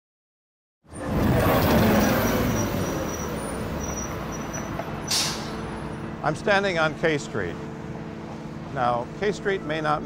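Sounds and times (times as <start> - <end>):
vehicle passing close: 0.9 - 6.2
city road traffic rumble: 0.9 - 10.0.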